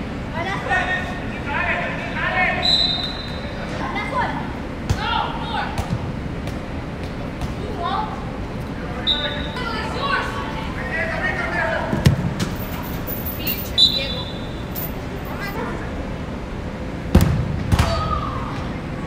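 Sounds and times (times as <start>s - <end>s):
players shouting and calling: 0.3s - 16.2s, 17.6s - 19.0s
short high whistles: 2.6s - 3.4s, 13.4s - 14.5s
soccer ball kicked: 17.1s - 18.0s.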